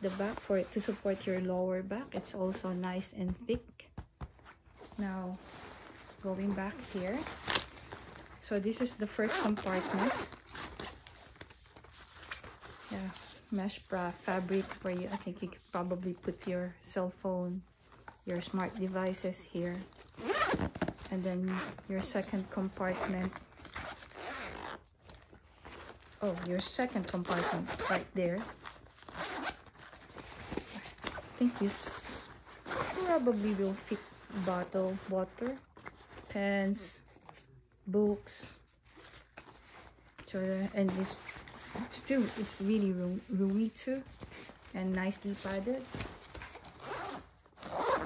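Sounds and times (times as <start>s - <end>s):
backpack zipper being pulled: 9.3s - 10.7s, 20.0s - 21.8s, 23.0s - 24.8s, 27.3s - 28.1s, 29.0s - 29.7s, 32.7s - 33.4s, 46.4s - 48.0s.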